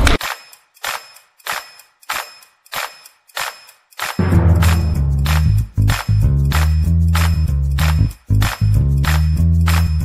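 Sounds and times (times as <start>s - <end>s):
sharp percussion hits: 4.2s - 6.6s.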